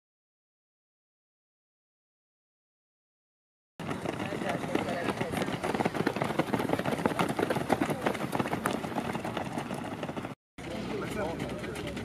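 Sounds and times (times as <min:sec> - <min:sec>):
runners' footsteps on dirt: 0:03.8 - 0:12.0.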